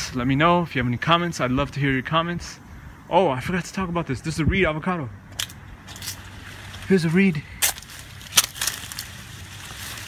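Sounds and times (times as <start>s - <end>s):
branch cracking: 5.3s - 10.0s
leaves and branches rustling: 5.3s - 10.0s.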